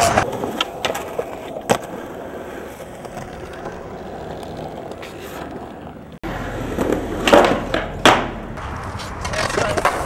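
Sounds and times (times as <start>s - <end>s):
skateboard clattering on ground: 0.0s - 2.0s, 6.7s - 10.0s
skateboard wheels rolling on concrete: 0.0s - 10.0s.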